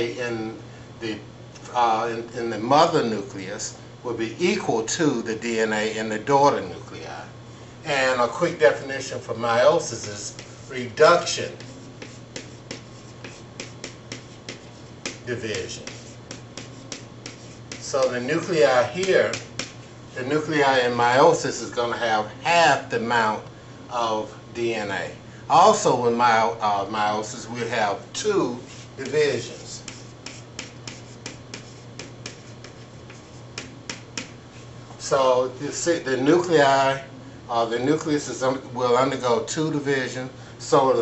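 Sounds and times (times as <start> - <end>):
chalk tapping on chalkboard: 9.9 - 18.2, 18.9 - 19.9, 28.6 - 34.4.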